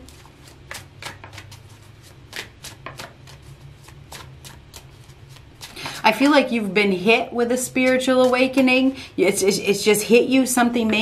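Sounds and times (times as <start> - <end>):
cards being shuffled: 0.0 - 6.0.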